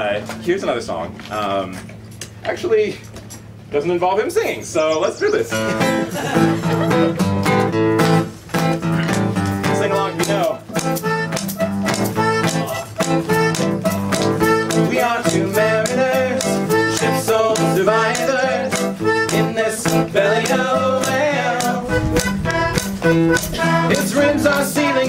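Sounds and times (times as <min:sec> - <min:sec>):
acoustic guitar strumming: 0:05.5 - 0:25.0
button accordion melody: 0:05.6 - 0:25.0.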